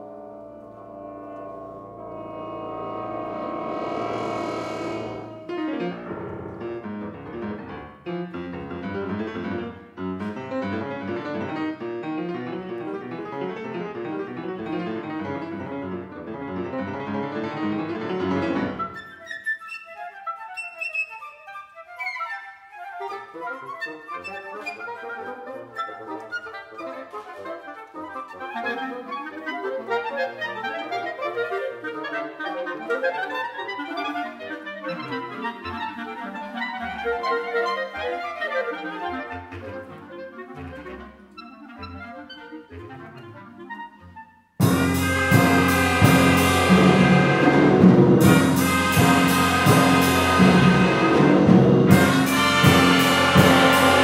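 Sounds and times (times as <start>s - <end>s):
wind band playing: 0.0s - 19.0s, 22.6s - 54.0s
piano playing: 0.0s - 19.2s, 44.6s - 54.0s.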